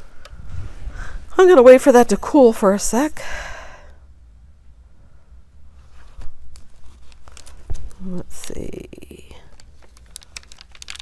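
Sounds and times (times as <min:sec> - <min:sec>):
plastic sheet peeling off crackling: 0:06.2 - 0:08.5, 0:09.5 - 0:11.0.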